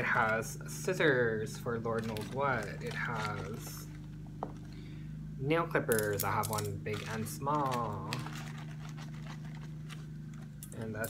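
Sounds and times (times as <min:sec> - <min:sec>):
steady low hum: 0:00.0 - 0:11.0
small items clicking in a bag: 0:01.9 - 0:04.1, 0:05.9 - 0:10.8.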